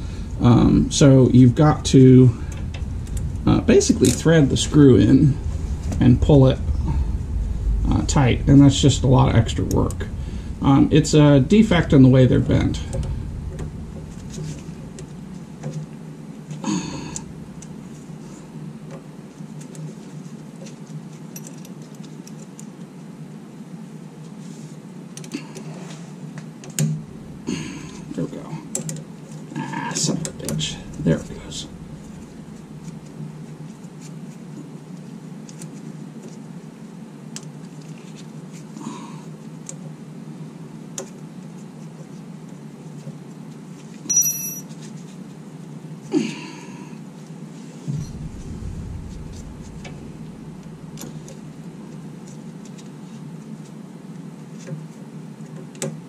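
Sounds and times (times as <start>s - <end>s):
steady low hum: 0.0s - 40.8s, 45.0s - 55.4s
ringing metal clink: 44.1s - 44.7s.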